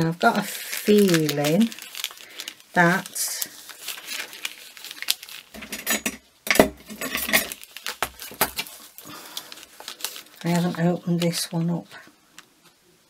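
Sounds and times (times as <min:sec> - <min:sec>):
paper rustling: 0:00.4 - 0:05.8, 0:06.9 - 0:11.5.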